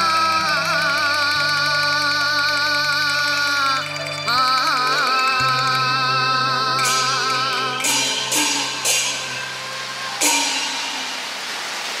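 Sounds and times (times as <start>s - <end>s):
cymbal crashes: 6.8s - 12.0s.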